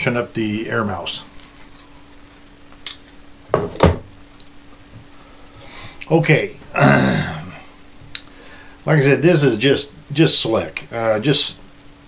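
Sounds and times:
objects knocking on desk: 3.5s - 4.1s.

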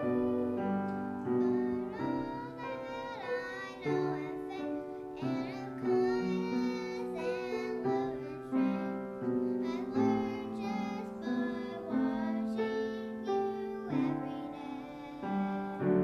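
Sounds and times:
girls singing together: 0.0s - 16.0s
piano accompaniment: 0.0s - 16.0s.

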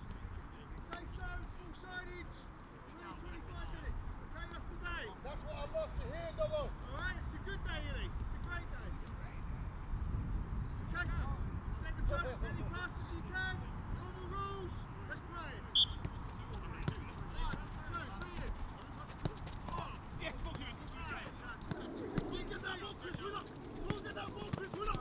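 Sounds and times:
football being kicked: 16.8s - 25.0s.

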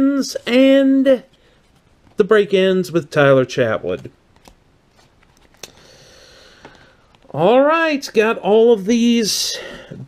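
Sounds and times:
quiet hiss of cards: 0.4s - 8.2s.

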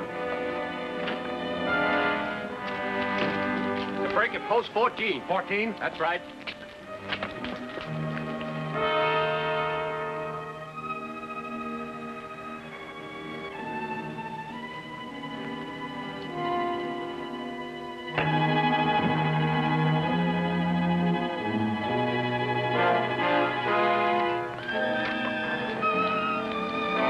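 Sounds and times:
orchestral strings holding chords: 0.0s - 27.0s.

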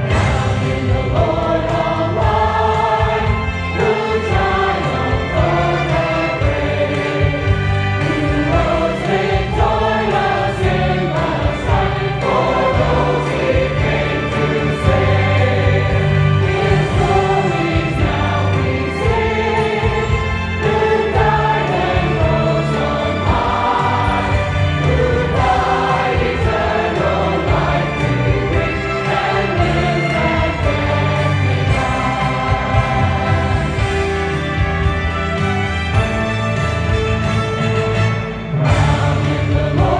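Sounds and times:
choir singing gospel: 0.0s - 39.9s
instrumental accompaniment with bass: 0.0s - 39.9s.

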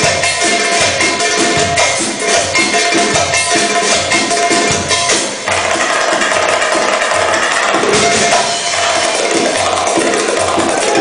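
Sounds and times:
drum beats: 0.0s - 11.0s
live band playing belly-dance music: 0.0s - 11.0s.

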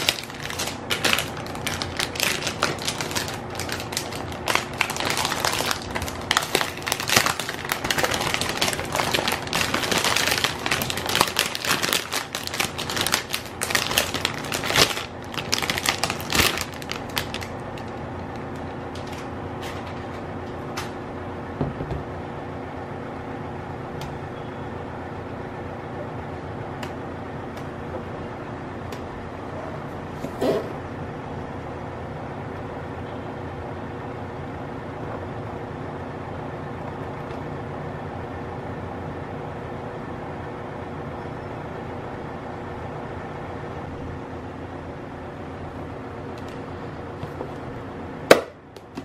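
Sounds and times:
plastic bag crinkling: 0.0s - 20.1s
steady background hum: 0.0s - 49.0s.

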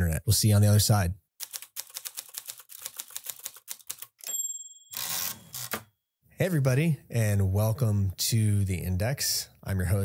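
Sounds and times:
typewriter keystrokes: 1.4s - 4.2s
typewriter bell ding: 4.2s - 5.7s
typewriter carriage return: 5.0s - 5.9s.

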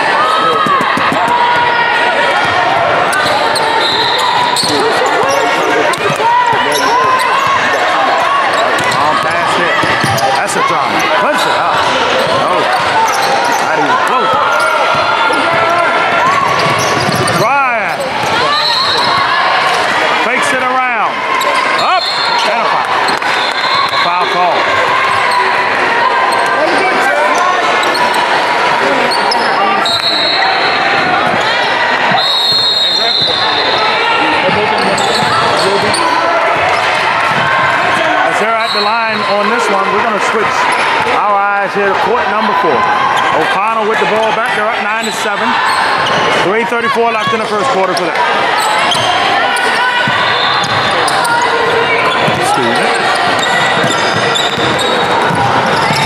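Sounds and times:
crowd and players' voices: 0.0s - 56.0s
sneakers squeaking: 0.2s - 20.0s, 26.3s - 39.7s, 44.9s - 46.5s, 47.1s - 56.0s
referee's whistle: 3.2s - 5.5s, 18.4s - 19.2s, 21.8s - 22.6s, 23.3s - 24.4s, 29.2s - 30.8s, 32.1s - 34.0s, 38.4s - 39.5s, 48.6s - 51.4s.

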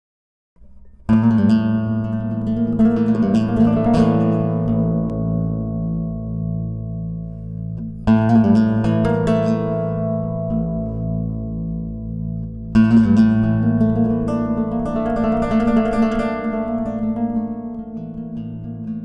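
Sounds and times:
plucked guitar notes: 0.6s - 19.0s
harp guitar strummed flourish: 3.2s - 11.6s.

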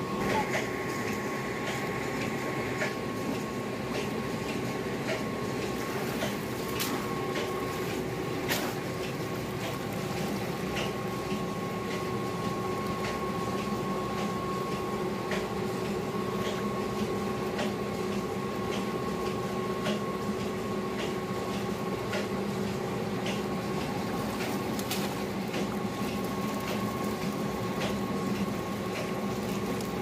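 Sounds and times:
steady mechanical hum: 0.0s - 30.0s.

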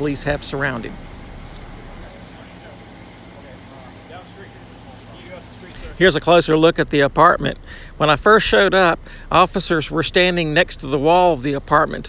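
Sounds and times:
faint distant voices: 0.0s - 12.0s
hum of vehicles: 0.0s - 12.0s.

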